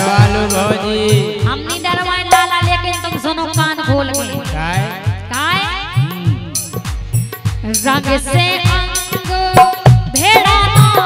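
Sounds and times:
drum strokes with bending bass: 0:00.0 - 0:11.0
jingling percussion: 0:00.0 - 0:11.0.

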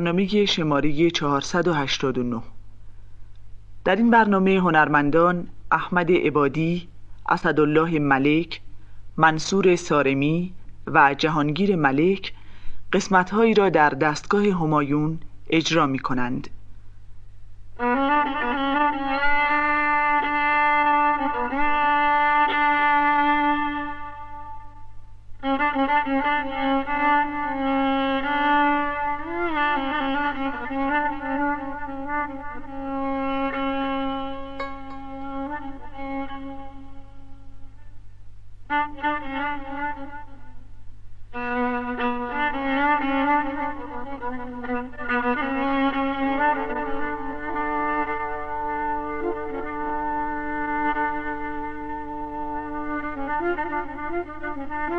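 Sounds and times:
low recording hum: 0:00.0 - 0:54.9
solo violin: 0:17.8 - 0:24.7, 0:41.3 - 0:54.9.

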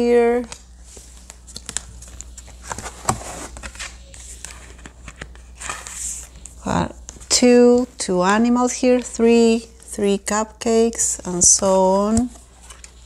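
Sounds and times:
board book pages rustling: 0:00.4 - 0:08.0, 0:12.1 - 0:13.0.

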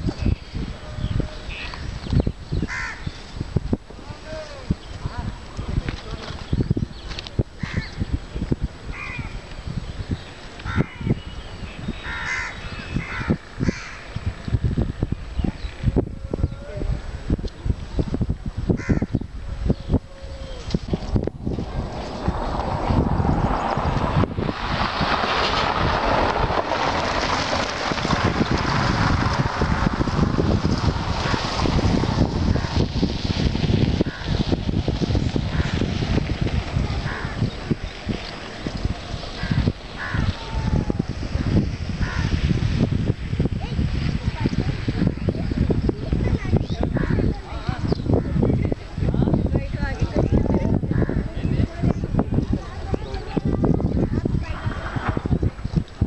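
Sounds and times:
steady rushing noise: 0:00.0 - 0:56.0
wind buffeting microphone: 0:00.0 - 0:56.0.

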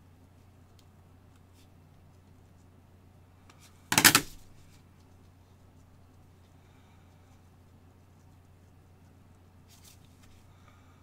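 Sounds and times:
loud handling noise: 0:03.9 - 0:04.5.

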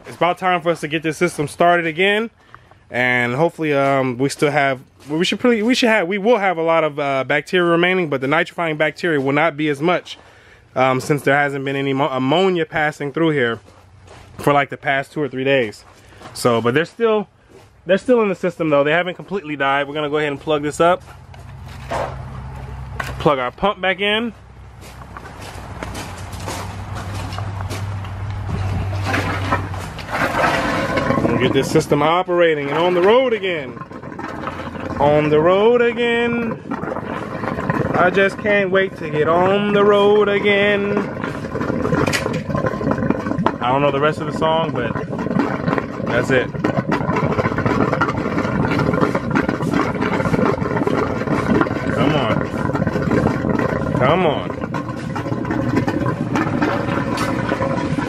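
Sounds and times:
water pump humming: 0:15.9 - 0:58.0
person speaking: 0:31.1 - 0:33.9, 0:37.9 - 0:41.2.

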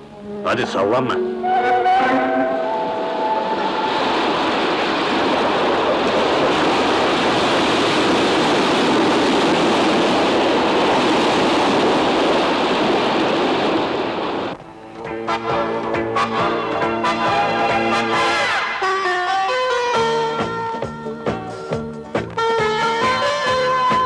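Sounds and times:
water rushing from ferry wake: 0:01.2 - 0:14.6.

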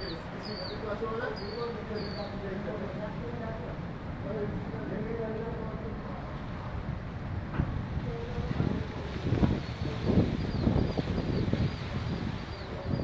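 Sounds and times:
jet airliner rumble: 0:00.0 - 0:13.0
wind buffeting microphone: 0:00.0 - 0:13.0.

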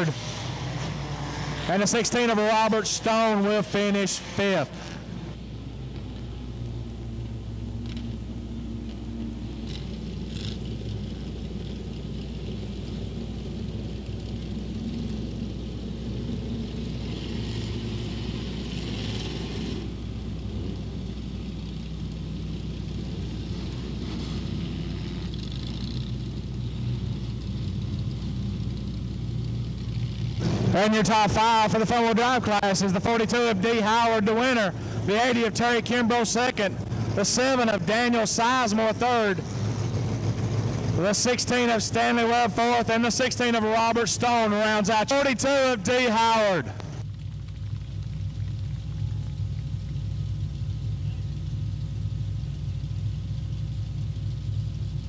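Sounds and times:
race car engines low rumble: 0:00.0 - 0:55.0.

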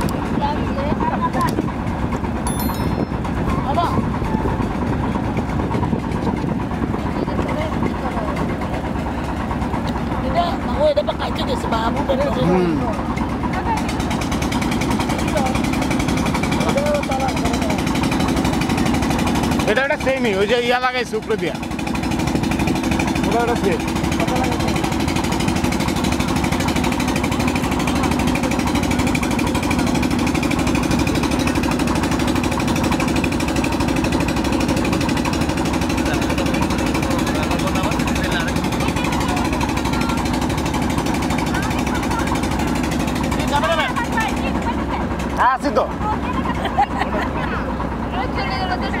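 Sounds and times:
boat engine chugging: 0:00.0 - 0:49.0.

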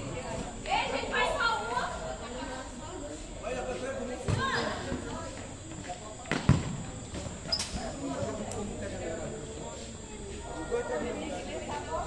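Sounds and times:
ball kicked thuds: 0:04.2 - 0:04.8, 0:06.2 - 0:07.4
ball bouncing on concrete: 0:06.2 - 0:07.7.

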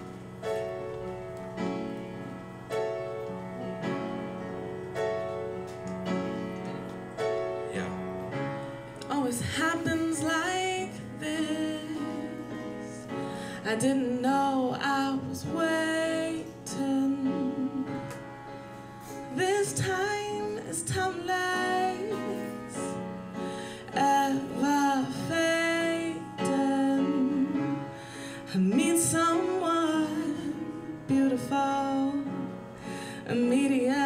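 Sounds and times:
instrumental accompaniment: 0:00.0 - 0:34.0
woman singing into microphone: 0:09.0 - 0:18.3, 0:19.3 - 0:23.1, 0:23.8 - 0:34.0.

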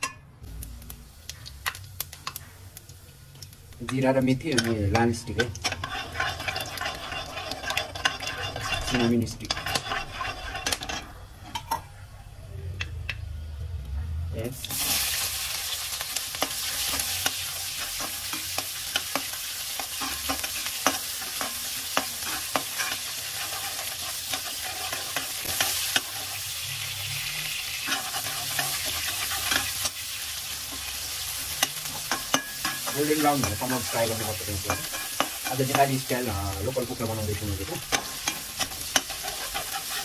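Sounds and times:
onions sizzling in hot oil: 0:00.0 - 0:11.7, 0:14.4 - 0:40.0
metal spatula scraping pan: 0:03.9 - 0:11.9, 0:16.1 - 0:40.0.

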